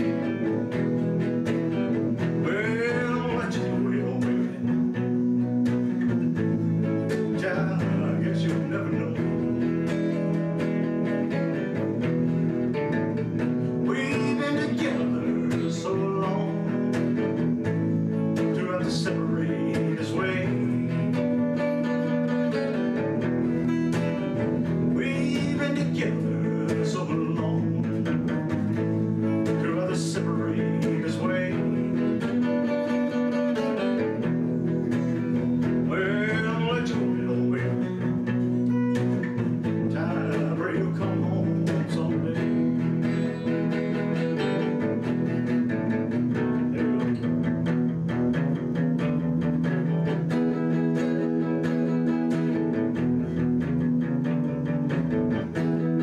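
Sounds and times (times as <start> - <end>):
man singing: 0.0 - 50.2
electric guitar chords: 0.0 - 56.0.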